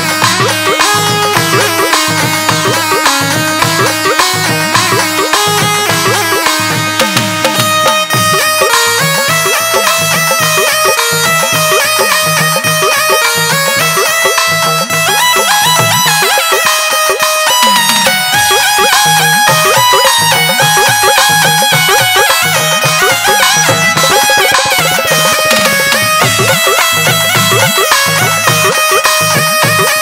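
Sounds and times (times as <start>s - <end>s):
electronic keyboard melody: 0.0s - 30.0s
repeating drum beat: 0.0s - 30.0s.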